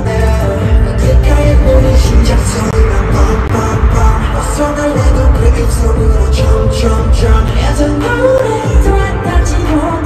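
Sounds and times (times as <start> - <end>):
pop song sung live: 0.0 - 10.0.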